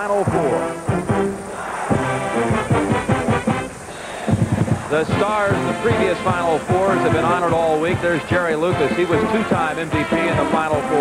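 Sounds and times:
brass band playing held notes: 0.0s - 11.0s
drum hits: 0.2s - 9.3s.

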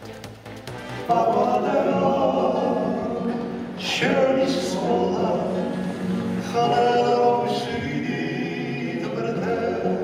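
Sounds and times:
male vocal group singing harmony: 1.0s - 10.0s.

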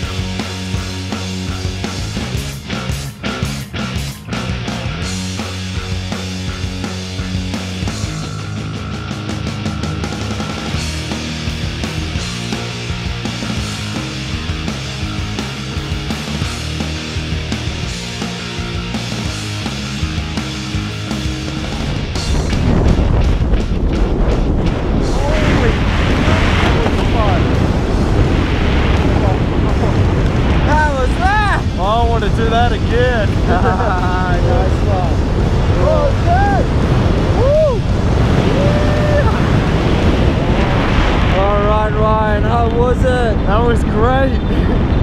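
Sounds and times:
music: 0.0s - 43.6s
wind rushing over microphone: 4.6s - 45.0s.

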